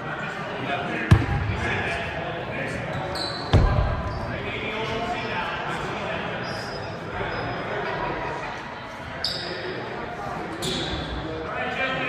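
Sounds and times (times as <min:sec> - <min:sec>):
chatter echoing in gym: 0:00.0 - 0:12.0.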